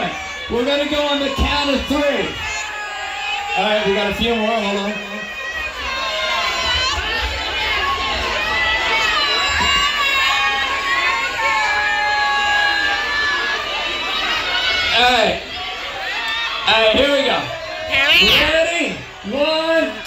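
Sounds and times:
crowd shouting and cheering: 0:00.0 - 0:20.0.

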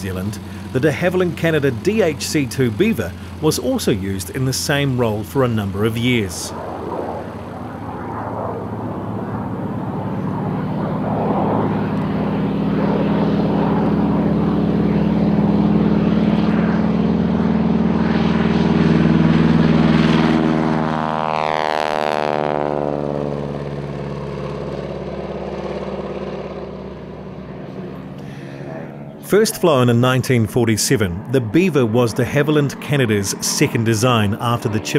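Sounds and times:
propeller plane taking off: 0:00.0 - 0:34.9.

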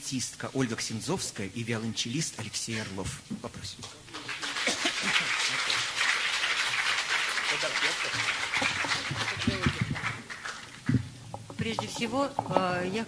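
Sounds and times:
audience applauding: 0:04.1 - 0:11.0.

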